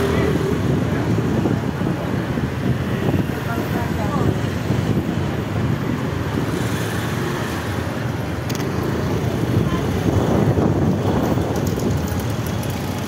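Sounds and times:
vehicles passing: 0.0 - 13.0.

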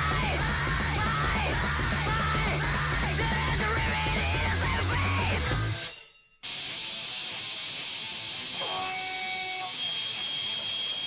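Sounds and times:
distorted electric guitar: 0.0 - 11.0
guitar feedback tones: 0.0 - 11.0.

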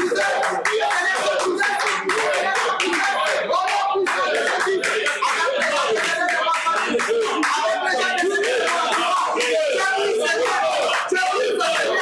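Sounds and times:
hands clapping: 0.0 - 12.0
voices talking: 0.0 - 12.0.

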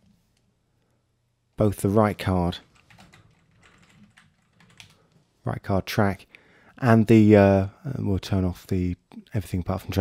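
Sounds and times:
keyboard typing: 2.7 - 5.2.

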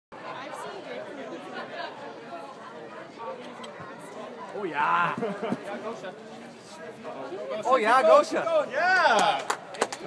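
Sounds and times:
overlapping chatter in a hall: 0.1 - 10.0.

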